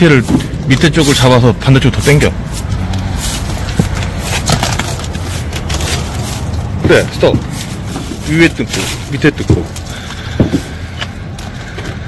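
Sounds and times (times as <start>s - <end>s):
vinyl film peeling and crackling: 2.8s - 10.0s.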